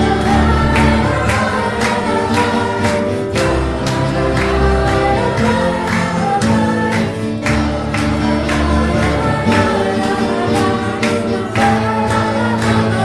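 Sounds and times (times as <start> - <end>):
group singing praise song: 0.0 - 13.0
instrumental accompaniment with beat: 0.0 - 13.0.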